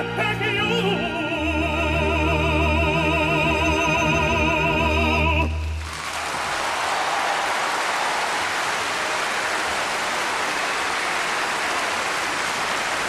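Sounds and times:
audience applauding: 5.6 - 13.0.

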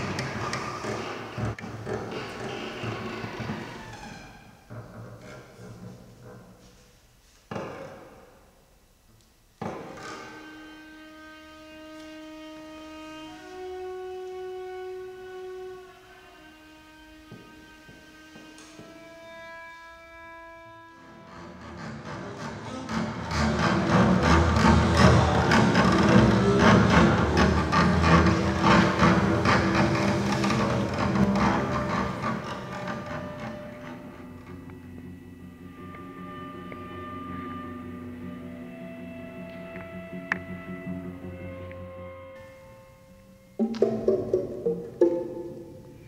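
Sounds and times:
bowed strings holding note: 23.6 - 46.0.

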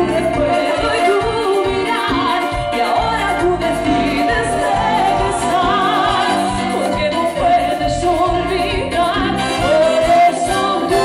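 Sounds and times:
electric guitars: 0.0 - 11.0
keyboards: 0.0 - 11.0
live dance band playing: 0.0 - 11.0
woman singing lead: 0.0 - 11.0
pulsing bass beat: 2.6 - 6.8.

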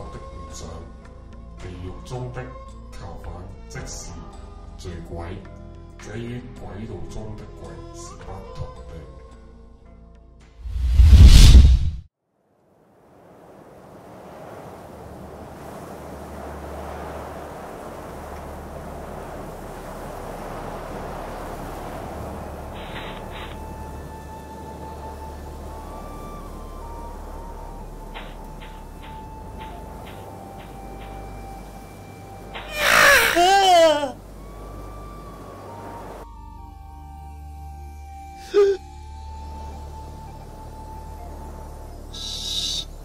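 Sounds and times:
loud wavering cry: 32.6 - 34.2.

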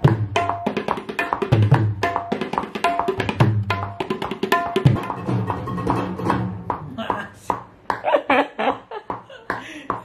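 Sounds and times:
tabla bass drum ringing tone: 0.0 - 7.3.

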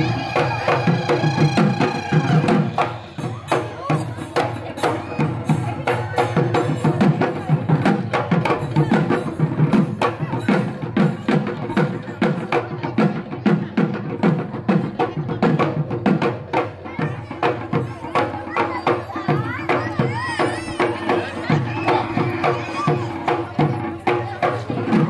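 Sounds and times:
folk music: 0.0 - 5.8
dhol drum strokes: 0.0 - 25.0
voices: 0.0 - 25.0.

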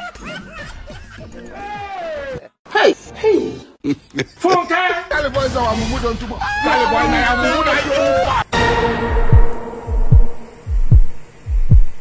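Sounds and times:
deep bass thuds in heartbeat rhythm: 9.1 - 12.0.

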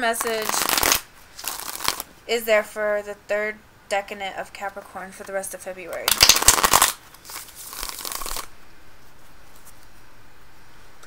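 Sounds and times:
cards being shuffled: 0.0 - 2.1, 5.2 - 10.0.

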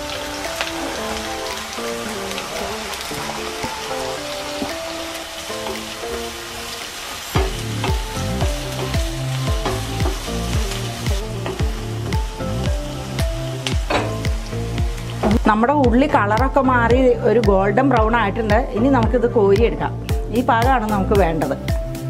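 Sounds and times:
onions sizzling in oil: 0.0 - 16.9
background music with beat: 7.4 - 22.0.

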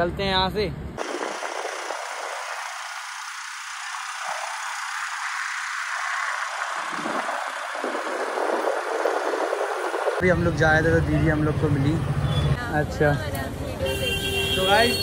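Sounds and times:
traffic from moving vehicle: 0.0 - 15.0
wind rushing: 1.0 - 10.7.

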